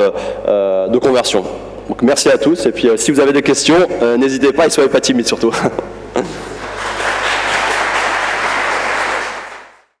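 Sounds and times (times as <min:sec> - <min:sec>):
audience applauding: 0:06.6 - 0:10.0.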